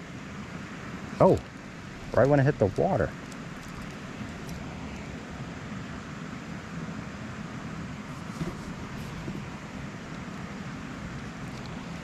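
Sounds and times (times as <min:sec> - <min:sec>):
rushing background noise: 0:00.0 - 0:12.0.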